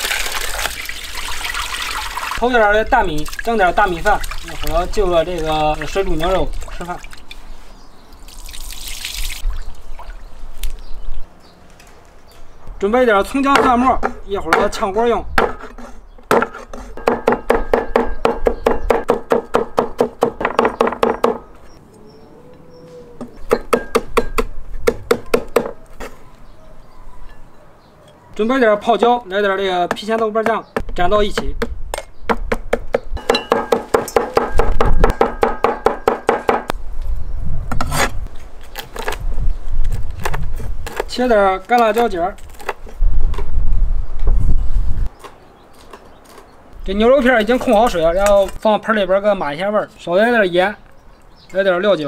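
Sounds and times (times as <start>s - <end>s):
cleaver chopping on wooden board: 15.4s - 21.5s, 23.3s - 25.8s, 29.9s - 36.7s.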